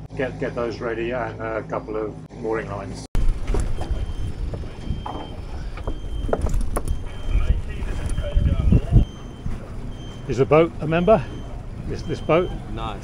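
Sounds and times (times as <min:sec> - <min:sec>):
boat motor idling: 0:03.2 - 0:13.0
faint voices: 0:07.0 - 0:13.0.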